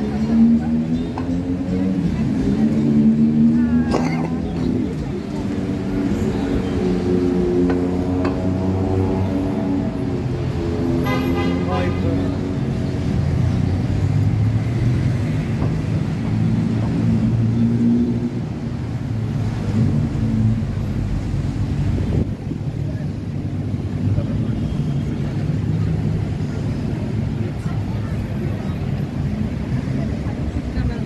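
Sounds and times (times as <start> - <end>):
pedestrians chattering: 0.0 - 31.0
road traffic: 0.0 - 31.0.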